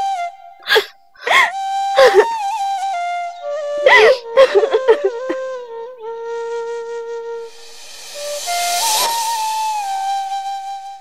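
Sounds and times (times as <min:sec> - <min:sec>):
breathy flute melody: 0:00.0 - 0:11.0
rushing hiss: 0:07.5 - 0:10.4.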